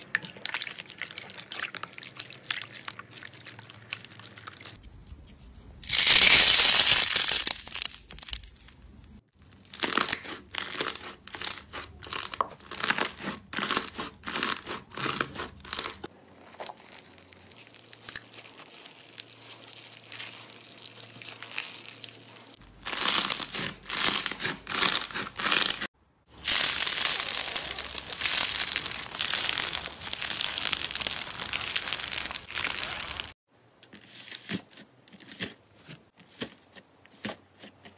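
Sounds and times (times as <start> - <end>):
slime crackling and crinkling: 0.0 - 4.8, 5.8 - 33.4
slime squishes: 0.0 - 4.8, 9.4 - 33.4.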